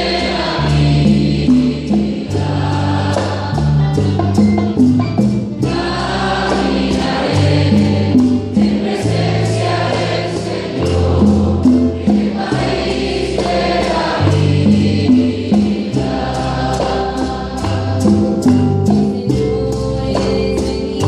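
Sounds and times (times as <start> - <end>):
group singing worship song: 0.0 - 5.0, 5.6 - 21.0.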